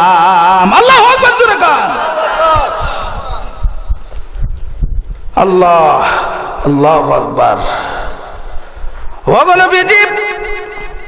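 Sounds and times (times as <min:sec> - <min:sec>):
amplified voice echo: 0:00.0 - 0:04.0, 0:05.3 - 0:11.0
air thumps buffeting a microphone: 0:02.5 - 0:05.5, 0:08.1 - 0:09.4.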